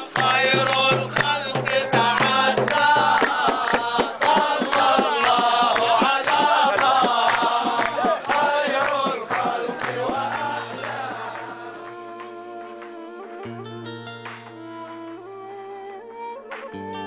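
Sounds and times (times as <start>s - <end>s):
men chanting and singing: 0.0s - 12.3s
sharp rhythmic beats: 0.0s - 12.3s.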